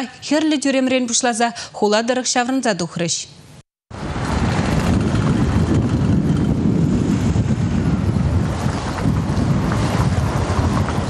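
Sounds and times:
wind buffeting microphone: 3.9s - 11.0s.

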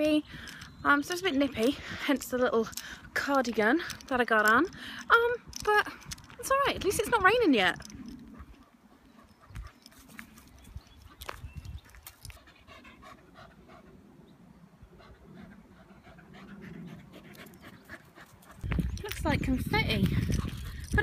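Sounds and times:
footsteps on gravel: 9.5s - 12.4s
dog panting faintly: 12.3s - 14.0s, 14.9s - 18.7s.

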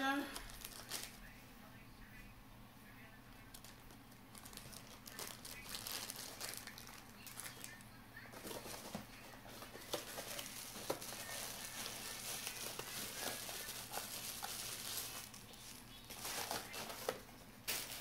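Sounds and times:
plastic packaging crinkling: 0.4s - 1.3s, 3.5s - 18.0s.

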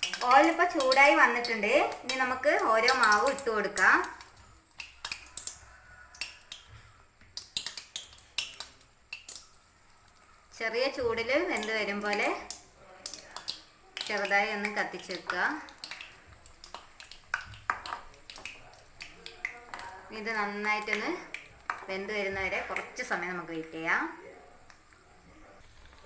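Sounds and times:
dough deep-frying in oil: 0.0s - 26.0s
oil popping and crackling: 0.0s - 26.0s.

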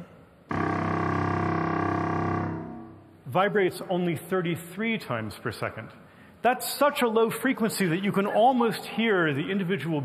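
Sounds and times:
contrabassoon low note: 0.5s - 3.2s.

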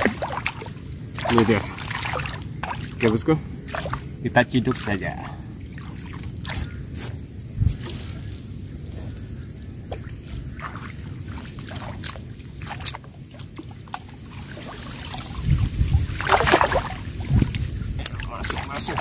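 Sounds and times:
water dripping: 0.0s - 6.8s
water sloshing and splashing: 0.0s - 19.0s.

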